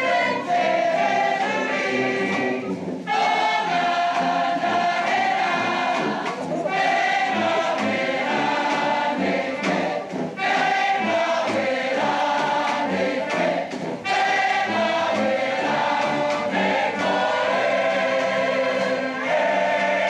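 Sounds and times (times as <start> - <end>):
choir singing long chords: 0.0 - 20.0.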